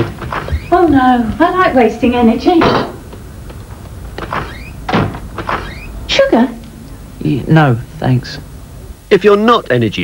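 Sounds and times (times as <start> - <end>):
sharp knocks in kitchen: 2.6 - 3.0, 4.4 - 5.6.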